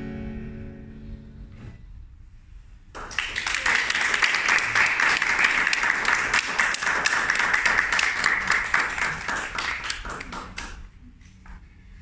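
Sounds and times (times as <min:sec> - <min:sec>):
audience applauding: 0:02.9 - 0:11.0.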